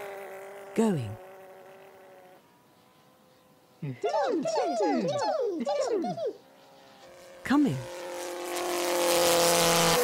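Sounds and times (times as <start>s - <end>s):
model aeroplane motor buzzing: 0.0s - 10.0s.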